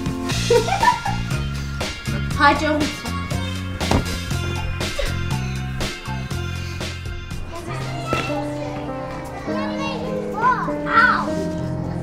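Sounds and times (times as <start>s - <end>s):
background music with held notes: 0.0s - 12.0s
children playing and calling out: 4.3s - 12.0s.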